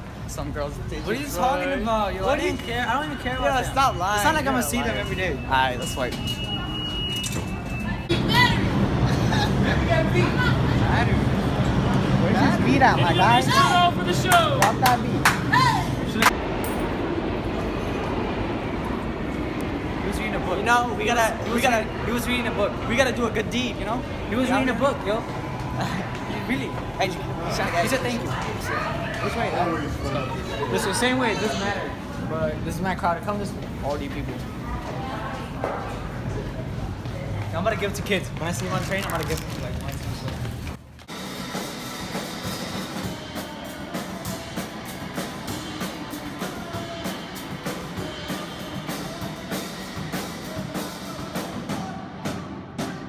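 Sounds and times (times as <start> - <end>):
subway train running: 0.0 - 53.0
drum kit beat: 41.1 - 53.0.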